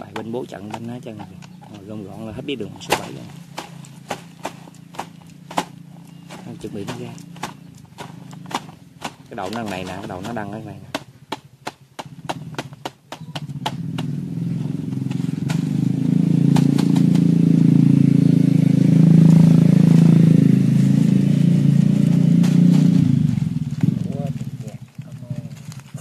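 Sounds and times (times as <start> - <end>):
vehicle engine passing by: 0.0 - 11.2, 12.0 - 26.0.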